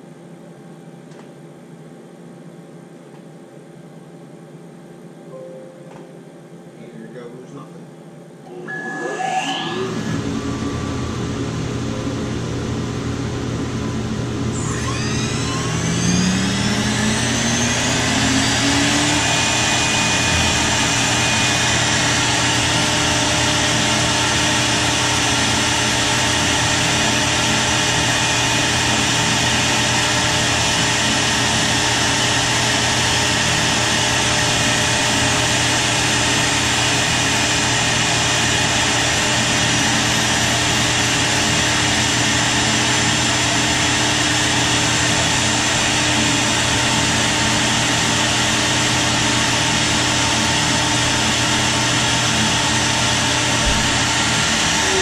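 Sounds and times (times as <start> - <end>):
router spindle whine: 8.5 - 55.0.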